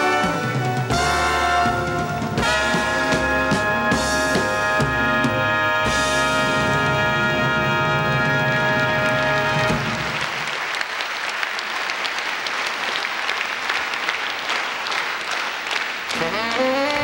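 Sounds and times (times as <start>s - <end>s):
audience applause: 8.5s - 17.0s.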